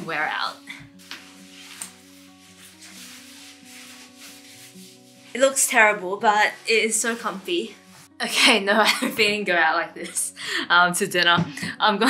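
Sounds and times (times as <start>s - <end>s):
soft background music: 0.0s - 12.0s
puffer jacket rustling: 0.9s - 8.2s.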